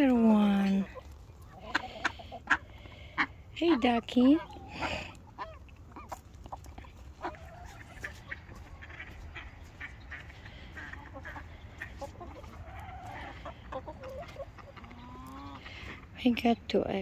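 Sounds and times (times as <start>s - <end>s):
chickens clucking: 0.0s - 17.0s.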